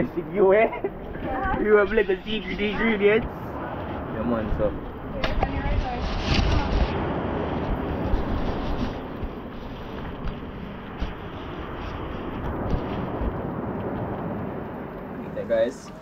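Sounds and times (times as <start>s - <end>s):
rain rushing: 0.0s - 16.0s
storm wind rumbling on microphone: 0.0s - 16.0s.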